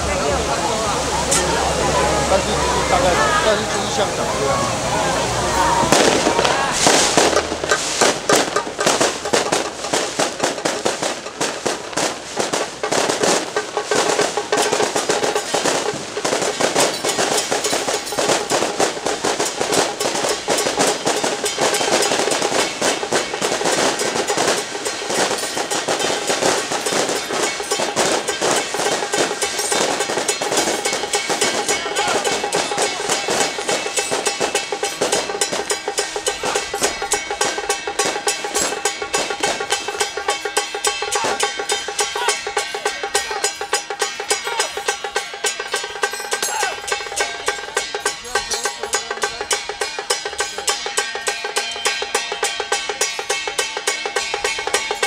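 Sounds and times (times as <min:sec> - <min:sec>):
cymbals crashing: 0:02.2 - 0:55.0
drum beaten loudly: 0:05.7 - 0:55.0.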